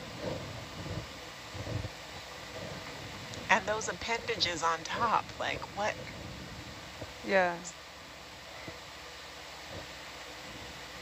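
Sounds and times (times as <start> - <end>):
audio feed hiss: 0.0 - 11.0
faint low rumbles: 0.0 - 11.0.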